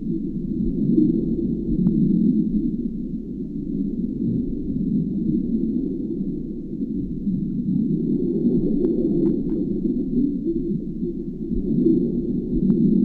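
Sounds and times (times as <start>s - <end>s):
underwater rumble: 0.0s - 13.0s.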